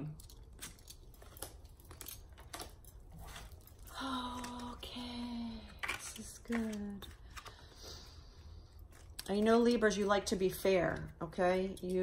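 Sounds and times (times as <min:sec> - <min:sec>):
card deck rustling: 0:00.5 - 0:08.1.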